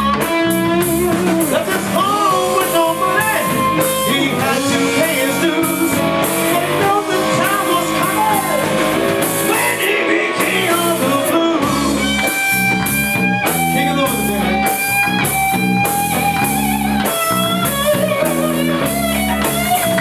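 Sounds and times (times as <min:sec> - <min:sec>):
blues-rock band playing: 0:00.0 - 0:20.0
electric guitar lead: 0:00.0 - 0:20.0.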